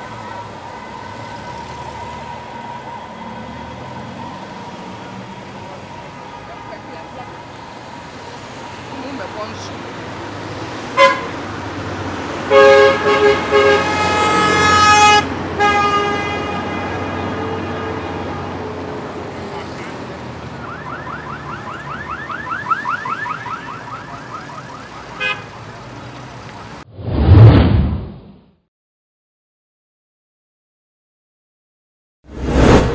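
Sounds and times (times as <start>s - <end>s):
slow-moving traffic: 0.0s - 28.3s
car horns honking: 10.9s - 11.4s, 12.5s - 18.4s, 25.1s - 25.7s.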